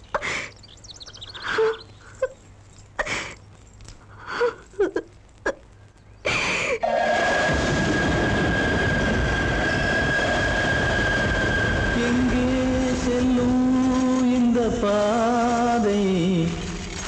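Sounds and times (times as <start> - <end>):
loud steady rushing noise: 7.0 - 14.2.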